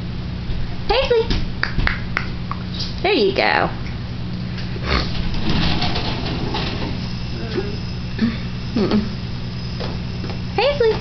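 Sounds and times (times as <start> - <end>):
sliding glass door rumbling: 4.8 - 10.1.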